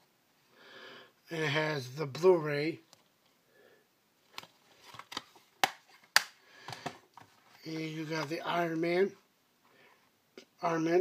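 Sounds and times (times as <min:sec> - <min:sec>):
plastic cases clicking and clacking: 0:04.3 - 0:07.6.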